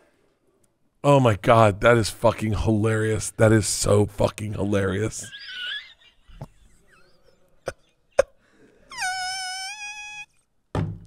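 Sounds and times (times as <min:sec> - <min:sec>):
man squealing with laughter: 0:05.2 - 0:07.8, 0:08.9 - 0:10.4.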